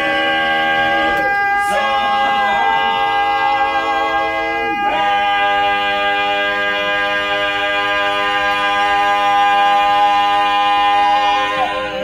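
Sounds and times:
barbershop quartet singing: 0.0s - 12.0s.

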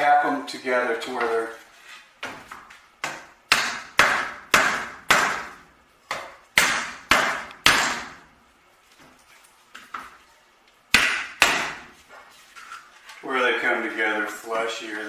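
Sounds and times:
hammer tapping wooden frame: 3.0s - 5.5s.

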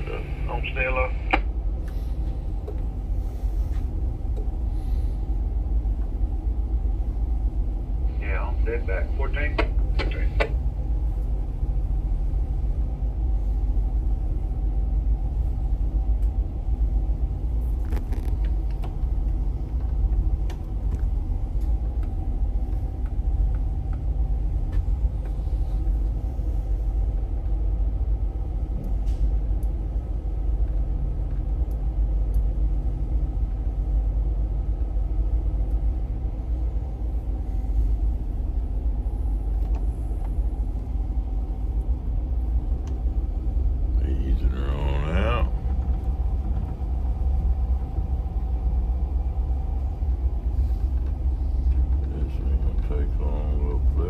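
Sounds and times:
diesel engines droning: 0.0s - 54.0s
faint hum: 0.0s - 54.0s.

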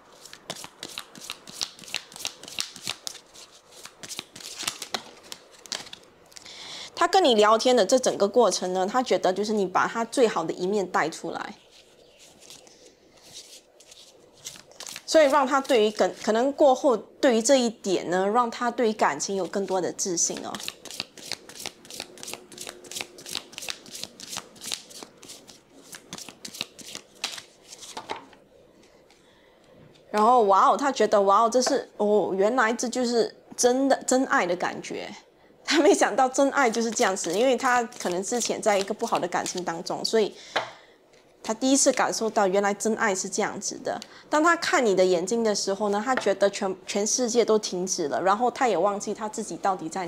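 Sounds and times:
cards being shuffled: 0.1s - 6.1s, 11.7s - 16.3s, 20.3s - 28.2s, 36.7s - 39.7s.

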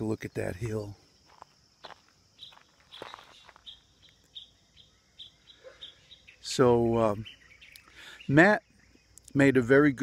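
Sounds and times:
bird chirping: 0.0s - 10.0s
high insect drone: 0.0s - 10.0s
soft footsteps: 0.6s - 3.9s.

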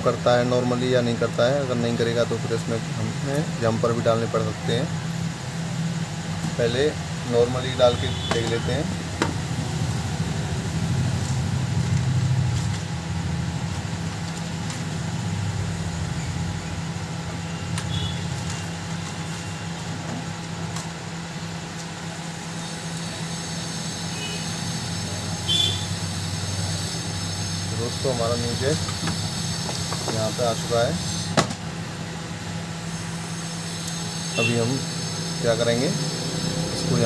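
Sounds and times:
fan motor humming: 0.0s - 37.0s.

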